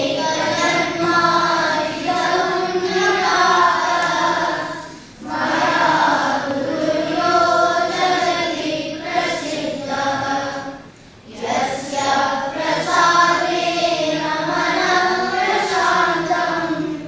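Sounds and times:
children chanting in unison: 0.0 - 17.0.

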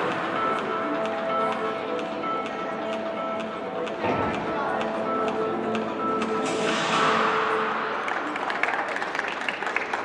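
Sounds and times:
gymnastics floor music: 0.0 - 8.2
audience clapping: 8.0 - 10.0.

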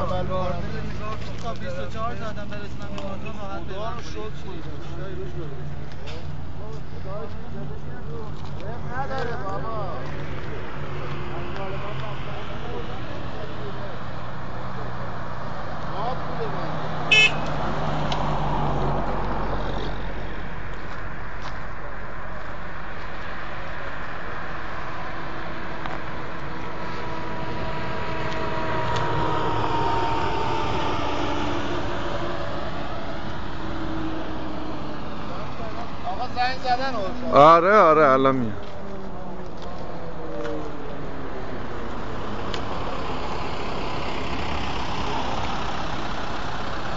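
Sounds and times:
highway traffic passing: 0.0 - 46.9
vehicle going by: 0.0 - 46.9.

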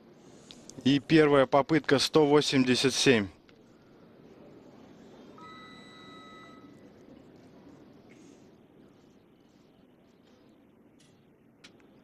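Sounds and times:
steady electronic beep: 5.4 - 6.8.

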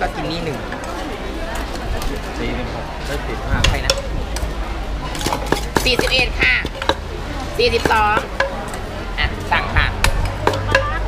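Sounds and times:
pestle knocking in mortar: 3.6 - 4.4, 5.2 - 7.1, 7.7 - 8.6, 9.9 - 10.8.

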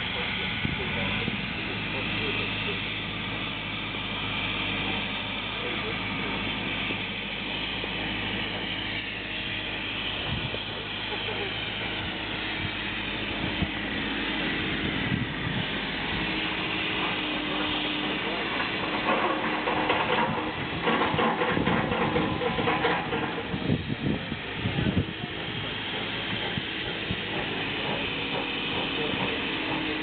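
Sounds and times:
faint voices: 0.0 - 8.7, 9.4 - 20.4, 21.1 - 30.0
locomotive engine drone: 0.0 - 30.0.

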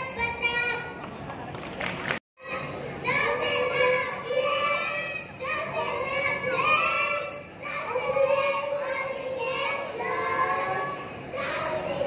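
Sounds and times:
children reciting in unison: 2.4 - 12.0.

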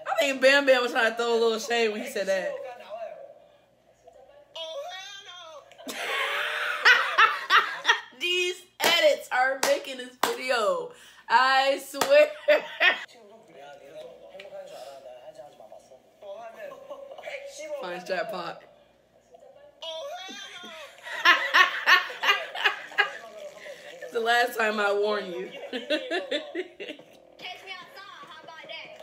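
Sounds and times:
woman laughing: 5.8 - 8.2, 12.2 - 13.1, 25.6 - 27.1.

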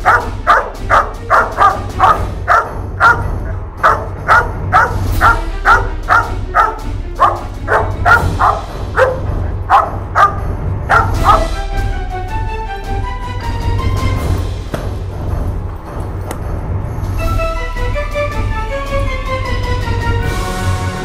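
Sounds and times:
dog barking sharply: 0.0 - 11.6.

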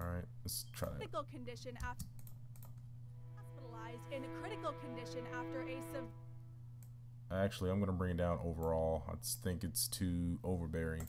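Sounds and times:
low steady hum: 0.0 - 11.0
sustained orchestral string chord: 3.2 - 6.5.

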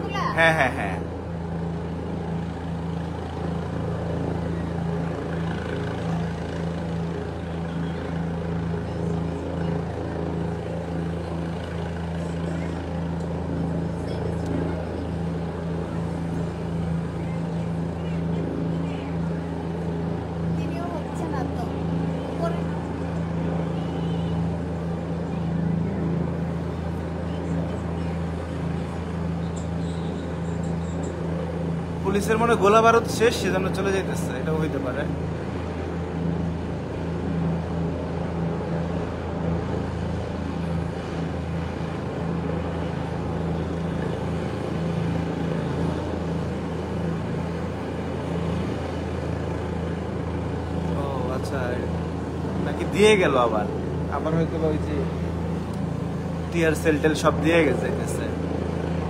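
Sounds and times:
helicopter hovering: 0.0 - 59.0.

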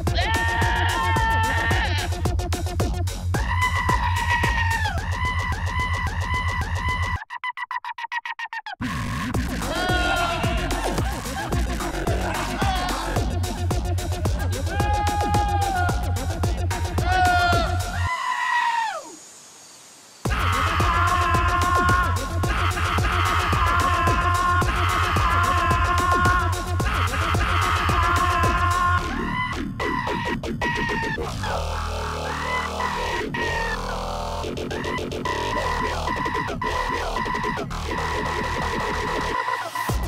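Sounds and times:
dubstep track with deep bass: 0.0 - 7.2, 8.8 - 18.1, 20.2 - 40.0
screaming sheep and goat samples: 0.1 - 2.2, 3.4 - 11.2, 11.8 - 13.3, 14.6 - 16.2, 16.9 - 19.2, 20.3 - 34.0
goat screaming: 0.2 - 2.1, 9.7 - 11.1, 17.0 - 19.2.

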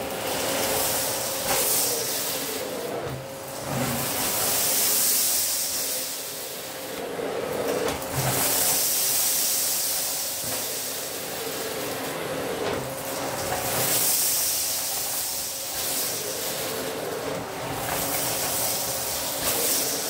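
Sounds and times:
vacuum cleaner running: 0.0 - 20.0
vacuum picking up grains: 7.7 - 20.0.

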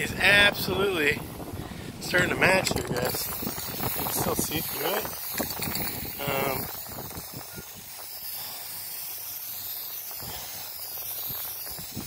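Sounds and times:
spray paint can hissing: 2.6 - 12.0.

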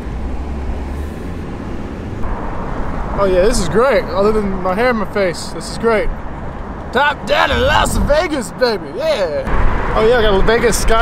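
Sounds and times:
wind and road noise rushing: 0.0 - 11.0.

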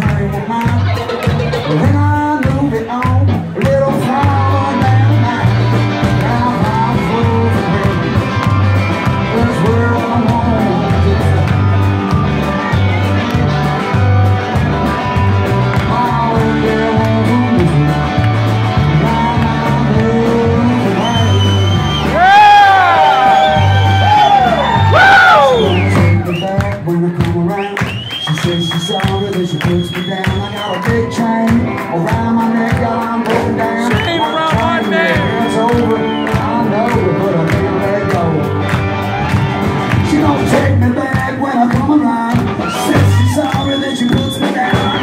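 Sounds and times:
live rock band playing: 0.0 - 45.0.

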